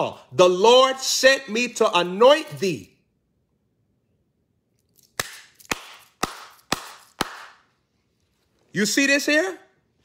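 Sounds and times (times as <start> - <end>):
hand claps: 5.2 - 7.7.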